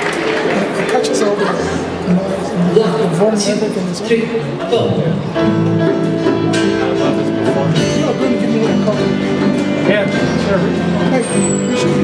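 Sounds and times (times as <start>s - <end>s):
strummed acoustic guitars: 4.9s - 12.0s.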